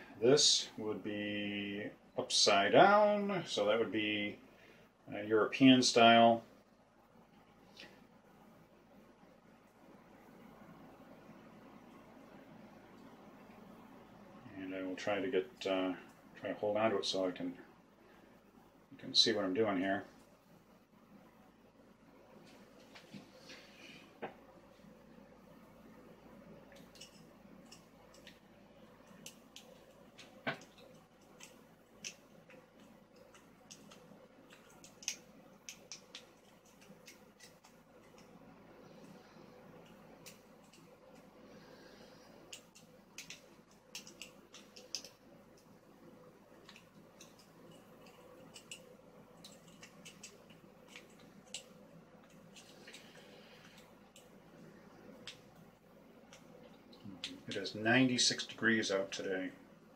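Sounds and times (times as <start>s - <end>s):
faint steady hum: 0.0s - 59.9s
lock pick ticks and scrapes: 46.6s - 53.0s.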